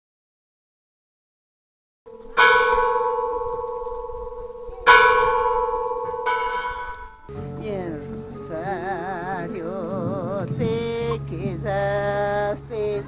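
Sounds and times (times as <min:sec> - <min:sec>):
bell ringing: 0:02.1 - 0:07.3.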